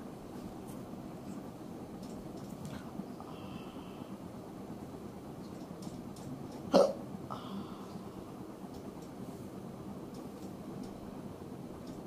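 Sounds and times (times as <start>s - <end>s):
ceiling fan humming: 0.0s - 12.0s.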